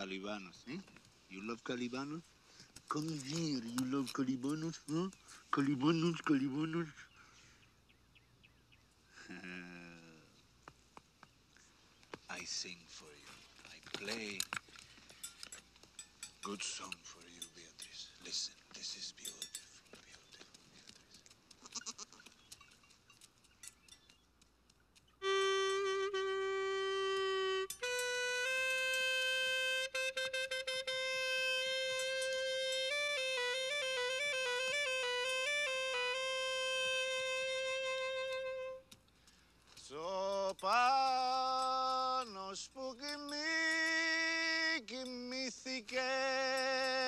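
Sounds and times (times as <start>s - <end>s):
clarinet long held notes: 25.2s - 38.9s.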